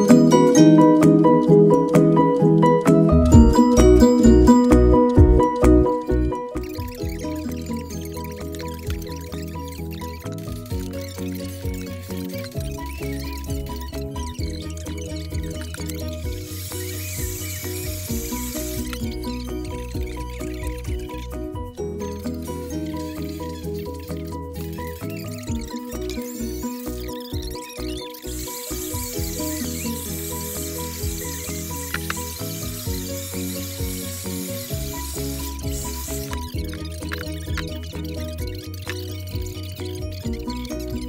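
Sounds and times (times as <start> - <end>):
instrumental background music: 0.0 - 41.0.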